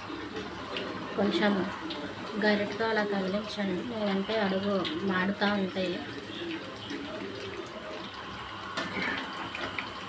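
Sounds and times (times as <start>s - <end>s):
chicken deep-frying in oil: 0.0s - 10.0s.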